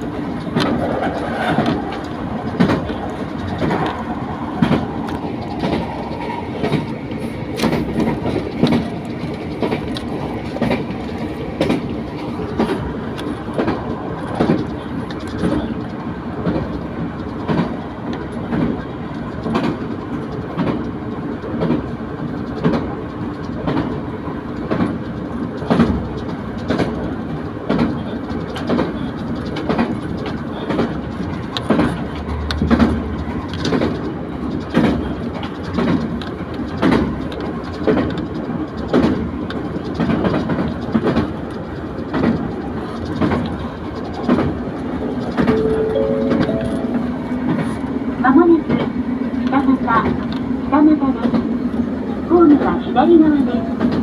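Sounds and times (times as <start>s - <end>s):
wheels clicking over rail joints: 0.0s - 45.8s
railcar rumble and hum: 0.0s - 54.0s.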